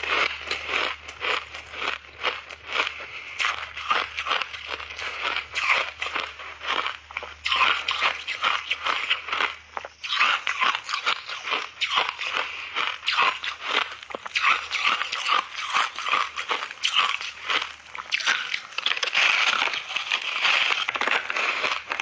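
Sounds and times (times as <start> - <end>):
ice crunched between teeth: 0.0 - 22.0.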